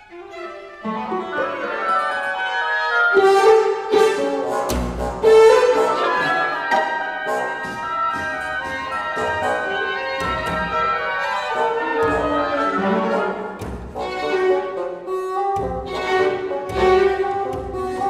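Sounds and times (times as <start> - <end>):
strings: 0.0 - 18.0
bassoon: 0.1 - 18.0
oboes: 0.3 - 18.0
harpsichord: 0.8 - 18.0
horns: 1.3 - 18.0.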